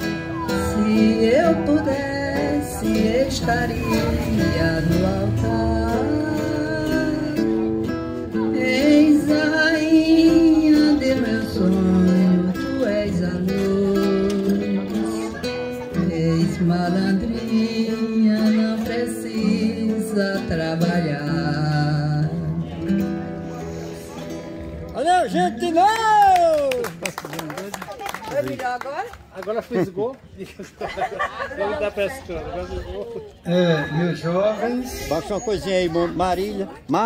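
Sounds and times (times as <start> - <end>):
acoustic guitar: 0.0 - 26.8
elderly woman singing a ballad: 0.5 - 7.6, 8.4 - 15.2, 16.0 - 22.8.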